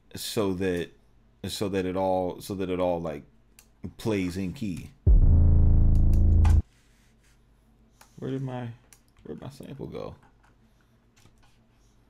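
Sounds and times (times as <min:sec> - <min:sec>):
low sustained bass note: 0:05.1 - 0:06.6.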